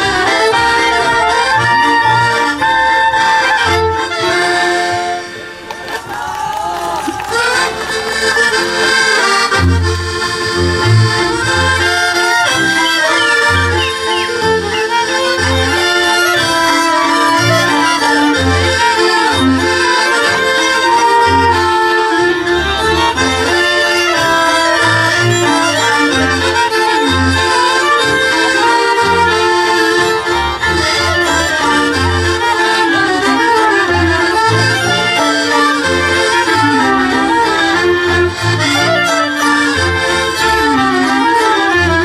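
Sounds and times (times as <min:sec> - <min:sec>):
double bass notes: 0:00.0 - 0:05.8, 0:07.3 - 0:42.0
accordion: 0:00.0 - 0:42.0
fiddles playing melody: 0:00.0 - 0:42.0.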